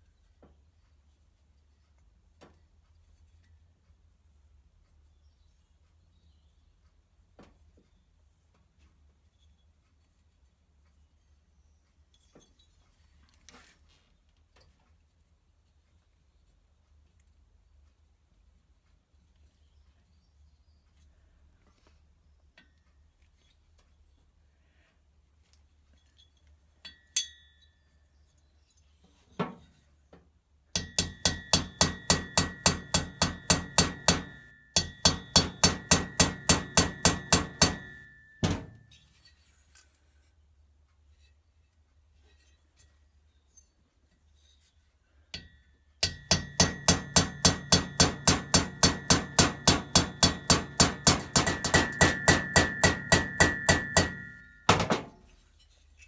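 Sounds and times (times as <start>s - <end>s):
hammer tapping on metal: 30.8s - 38.9s, 45.4s - 55.2s.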